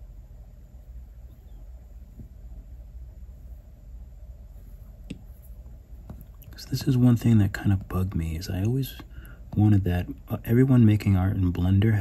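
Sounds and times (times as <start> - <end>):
room hum: 0.0 - 12.0
man speaking: 6.5 - 12.0.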